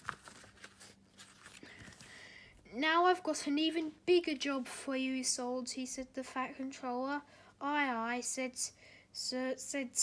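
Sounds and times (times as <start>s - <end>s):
book page turning: 0.0s - 2.2s
paper rustling: 0.0s - 2.2s.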